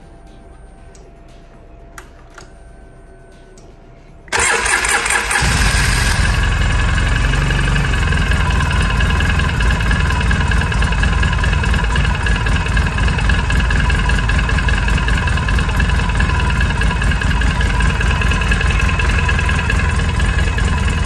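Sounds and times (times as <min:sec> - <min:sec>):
engine starter cranking: 0:04.3 - 0:07.0
atv engine idling: 0:05.3 - 0:21.0.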